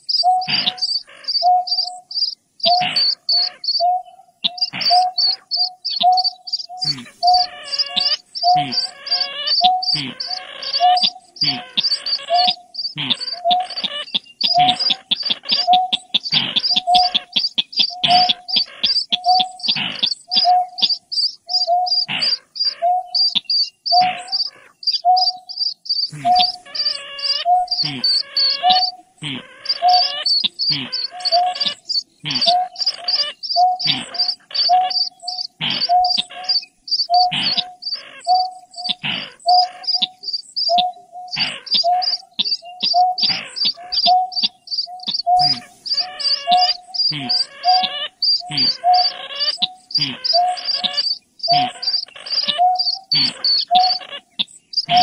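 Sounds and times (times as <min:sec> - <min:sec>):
low hollow bird hoots: 0:00.0 - 0:55.0.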